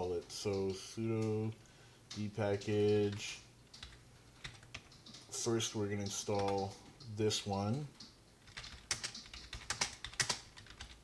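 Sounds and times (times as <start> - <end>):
keyboard typing: 2.1 - 11.0.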